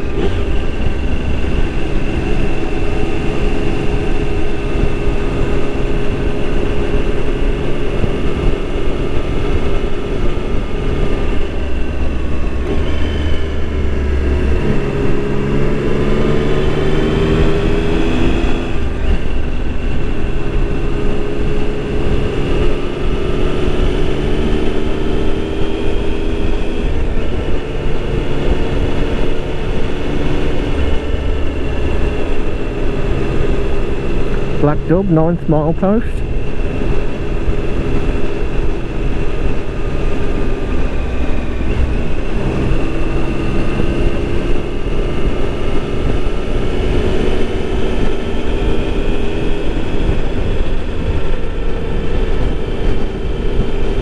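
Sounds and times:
motorcycle engine running: 0.0s - 34.9s, 36.2s - 54.0s
wind and road noise: 0.0s - 54.0s.

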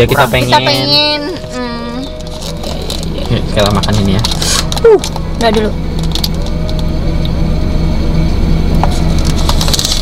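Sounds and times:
faint background music: 0.0s - 9.3s
car cabin hum: 0.0s - 10.0s.

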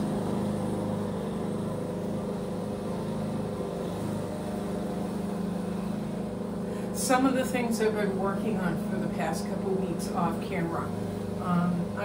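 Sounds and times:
lawn mower engine running: 0.0s - 12.0s.

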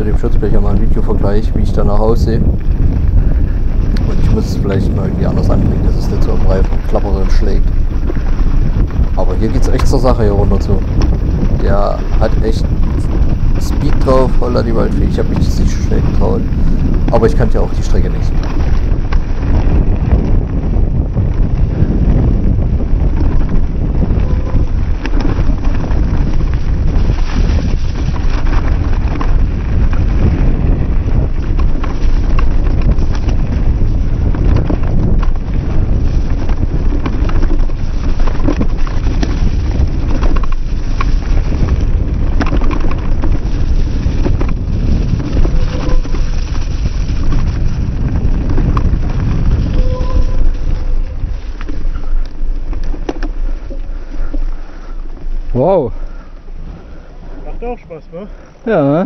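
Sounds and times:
mudguard rattling against tyre: 0.0s - 59.0s
wind buffeting microphone: 0.0s - 59.0s
tyres rolling over dirt and leaves: 3.6s - 20.0s, 24.6s - 56.0s.

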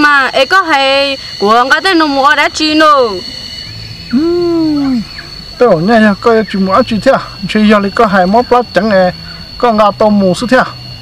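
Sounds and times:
man speaking: 5.6s - 10.8s.

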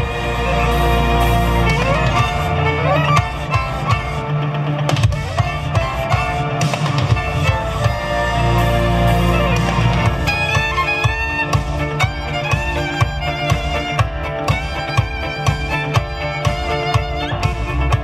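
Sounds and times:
backing track with heavy bass: 0.0s - 18.0s
violins playing a rock tune: 0.0s - 18.0s.

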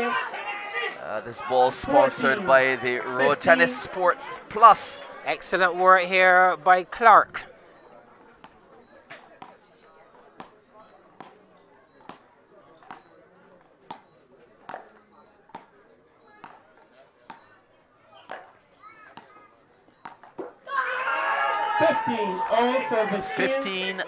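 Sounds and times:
faint crowd voices: 0.0s - 24.0s
commentator speaking: 1.0s - 7.4s, 21.8s - 24.0s
ball bouncing on court: 10.4s - 10.6s, 11.2s - 11.4s, 12.0s - 13.1s, 13.9s - 15.7s, 16.4s - 16.7s, 18.2s - 19.3s
wooden paddles striking ball: 12.0s - 12.2s, 13.9s - 15.7s, 16.4s - 16.7s, 18.3s - 19.3s, 20.0s - 20.6s.

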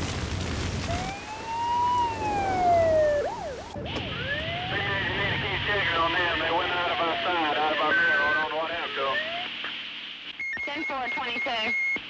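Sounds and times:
ambulance siren: 0.9s - 7.2s.

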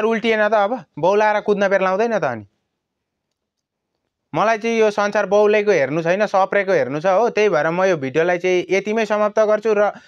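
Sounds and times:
man speaking: 0.0s - 2.5s, 4.3s - 10.0s.

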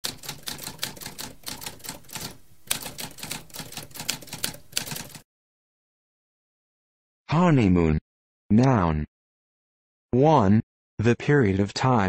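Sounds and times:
typewriter typing: 0.0s - 5.2s.

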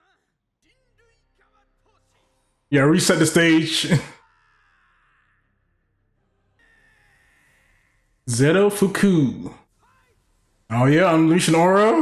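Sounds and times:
man's voice: 2.7s - 4.2s, 8.3s - 9.6s, 10.7s - 12.0s.

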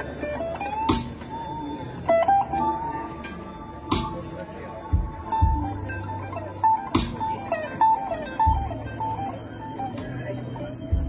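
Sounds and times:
electric guitar lead sliding: 0.0s - 11.0s
live blues band playing: 0.0s - 11.0s.

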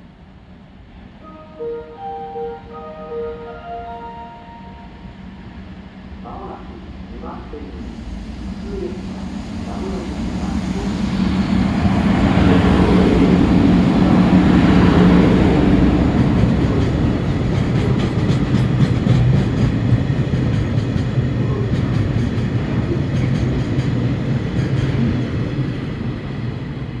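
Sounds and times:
electric locomotive humming: 0.0s - 27.0s
train wheels clattering over rail joints: 16.4s - 21.2s.

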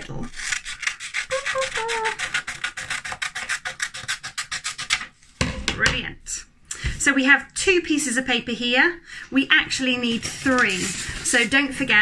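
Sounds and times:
scissors snipping paper: 0.4s - 5.0s.

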